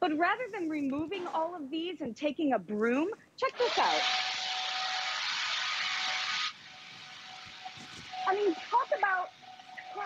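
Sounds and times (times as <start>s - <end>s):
leaf blower running: 3.6s - 10.0s.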